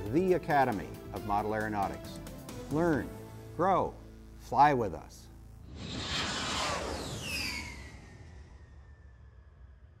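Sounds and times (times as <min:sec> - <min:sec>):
whoosh with falling whistle tones: 0:05.7 - 0:10.0.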